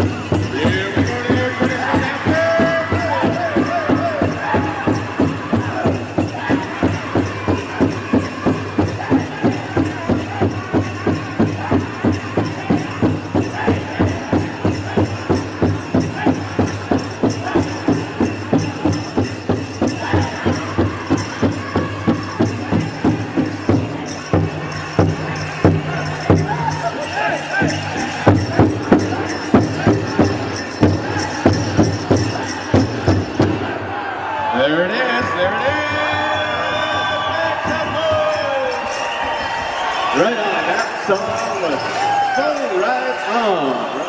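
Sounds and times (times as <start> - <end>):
bells jingling: 0.0 - 33.6, 35.2 - 44.0
steady beat on big drum: 0.0 - 33.7
drum group singing: 0.0 - 33.8.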